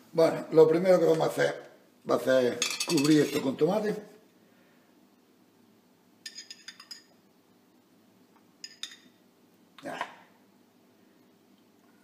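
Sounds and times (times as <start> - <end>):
metal spoon clinking in glass jar: 2.6 - 3.5, 6.2 - 7.1, 8.6 - 9.1.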